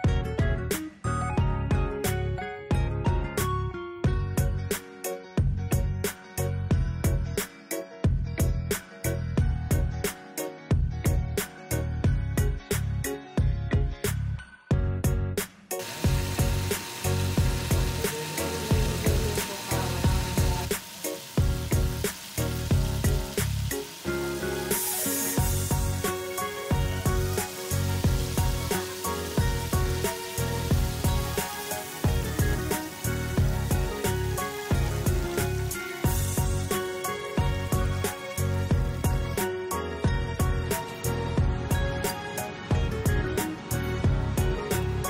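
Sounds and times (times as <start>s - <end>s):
background music with steady beat: 0.0s - 45.0s
loud hiss: 15.8s - 38.6s
food frying in hot oil: 15.8s - 39.3s.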